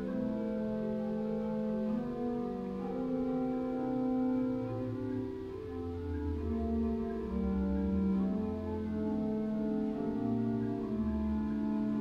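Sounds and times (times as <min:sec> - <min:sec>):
church organ chords: 0:00.0 - 0:12.0.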